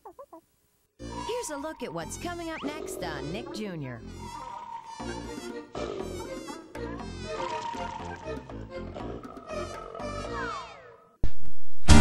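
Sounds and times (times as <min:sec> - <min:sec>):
cartoon bee buzzing: 0:01.0 - 0:11.0.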